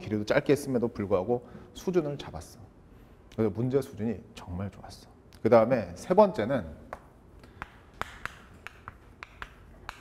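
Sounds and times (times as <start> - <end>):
chalk clicking on chalkboard: 7.5 - 10.0.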